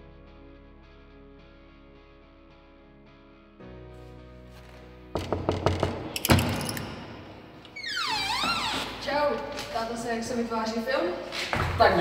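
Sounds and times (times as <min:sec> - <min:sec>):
knuckles knocking on wooden door: 0:05.2 - 0:06.1.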